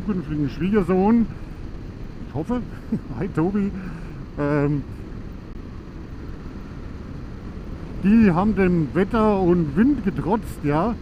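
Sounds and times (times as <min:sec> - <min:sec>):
motorcycle engine and wind rumble: 0:00.0 - 0:11.0.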